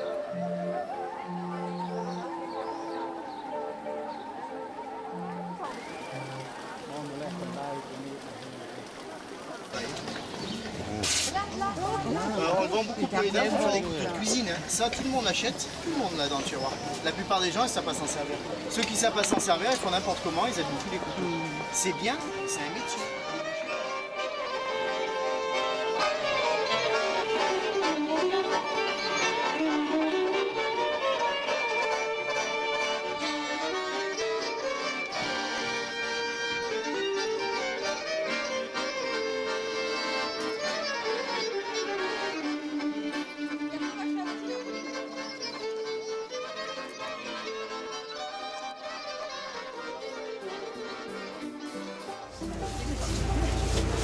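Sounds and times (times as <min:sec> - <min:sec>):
accordion chords: 0:00.0 - 0:07.0, 0:10.7 - 0:54.0
violins playing melody: 0:00.0 - 0:08.6, 0:10.8 - 0:54.0.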